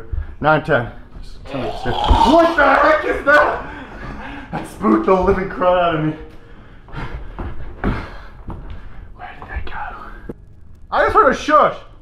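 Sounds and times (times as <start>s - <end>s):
footsteps on carpeted stairs: 6.3s - 10.4s
breathy whisper: 6.9s - 10.4s.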